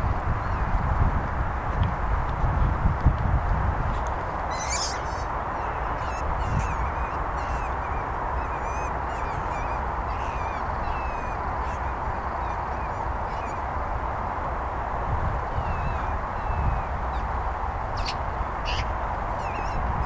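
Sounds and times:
background rumble and hiss: 0.0s - 20.0s
birds chirping and twittering: 3.8s - 13.8s, 15.4s - 17.3s, 17.9s - 20.0s
harsh bird call: 4.5s - 13.7s, 18.0s - 20.0s.

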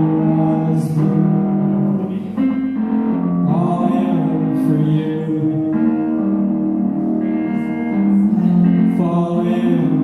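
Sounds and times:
guitar playing: 0.0s - 10.0s.

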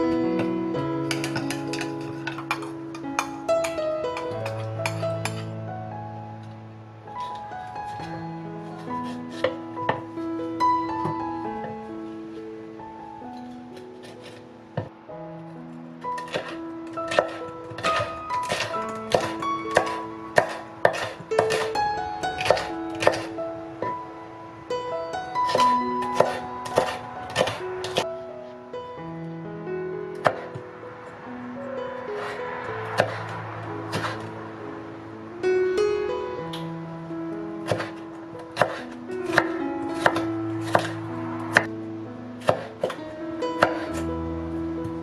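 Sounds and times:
light background music: 0.0s - 45.0s.

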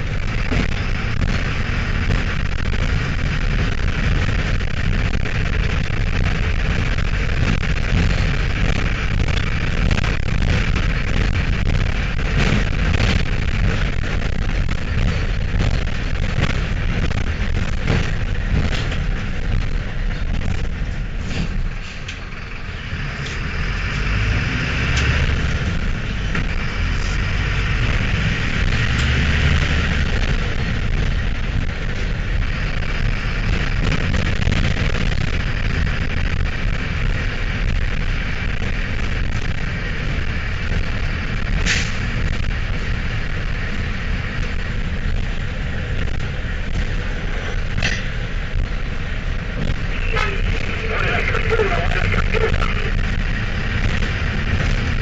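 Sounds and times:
diesel bus engine driving: 0.0s - 55.0s
bus body knocking: 6.6s - 21.7s.

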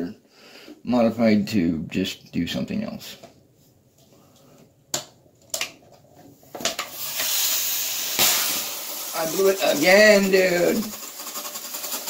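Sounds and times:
foam spraying out of bottle: 6.9s - 12.0s.

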